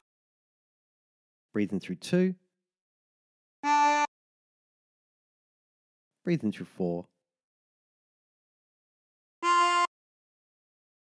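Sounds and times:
harmonica draw note: 0:03.6 - 0:04.1, 0:09.4 - 0:09.9.

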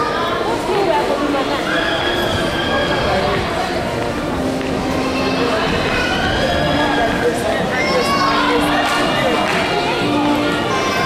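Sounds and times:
echoing voices in a large hall: 0:00.0 - 0:11.0.

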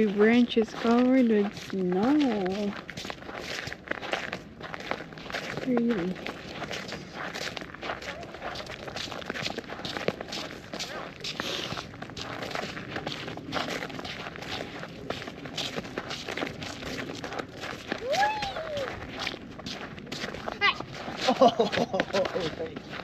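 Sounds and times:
footsteps on snow: 0:00.0 - 0:23.0.

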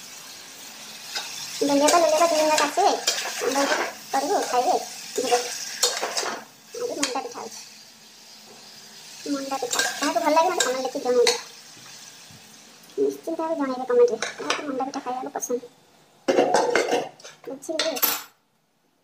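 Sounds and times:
faint sizzle: 0:00.0 - 0:19.0
spatula scraping a pan: 0:01.1 - 0:07.6.

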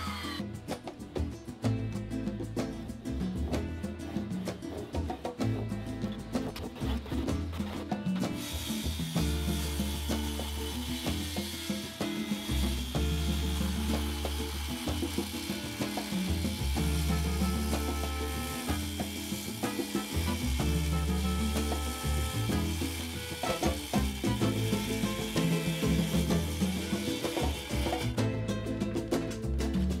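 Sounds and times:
circular saw cutting timber: 0:00.0 - 0:00.4, 0:06.4 - 0:28.3
upbeat music: 0:00.0 - 0:30.0.

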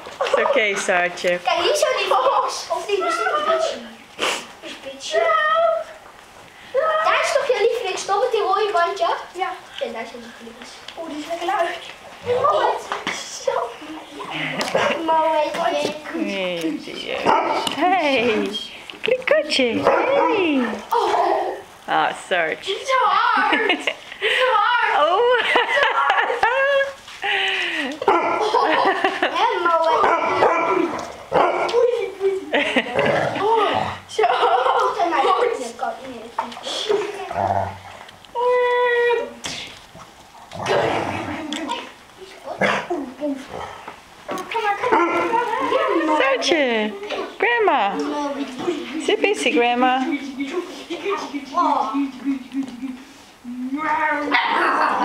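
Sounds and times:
children's voices: 0:00.0 - 0:21.9, 0:22.6 - 0:55.0
people talking: 0:00.2 - 0:04.0, 0:04.6 - 0:06.0, 0:06.7 - 0:31.0, 0:31.6 - 0:37.7, 0:44.4 - 0:55.0
people laughing: 0:13.5 - 0:15.1, 0:23.2 - 0:31.1, 0:31.7 - 0:35.7, 0:40.6 - 0:42.0, 0:44.8 - 0:47.2, 0:48.6 - 0:53.2.

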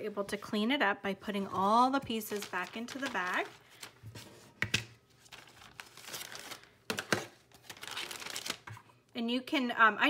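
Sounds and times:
plastic bag crinkling: 0:02.1 - 0:04.0, 0:05.2 - 0:08.9.

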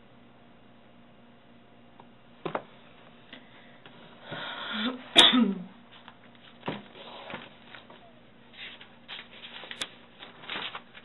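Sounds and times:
person sneezing: 0:04.6 - 0:05.8.

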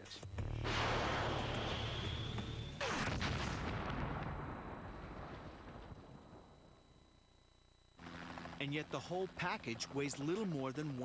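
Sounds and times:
explosion blast: 0:00.5 - 0:06.5.

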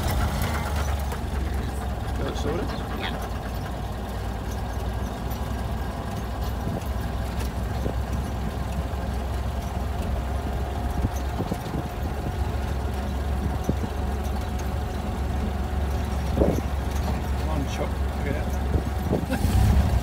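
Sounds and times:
car engine droning: 0:00.0 - 0:20.0.

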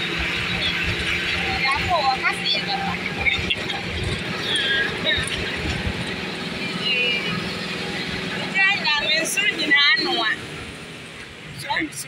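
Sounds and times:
high squeals: 0:00.0 - 0:10.3
truck driving on dirt road: 0:00.0 - 0:12.0.

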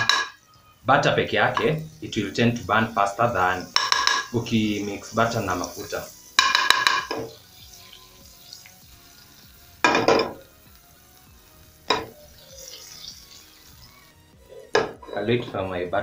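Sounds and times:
butter sizzling faintly: 0:00.0 - 0:16.0
metal spoon scraping a pan: 0:03.4 - 0:08.7, 0:11.9 - 0:15.6
spoon clicking on pan: 0:03.8 - 0:04.3, 0:06.4 - 0:07.4.

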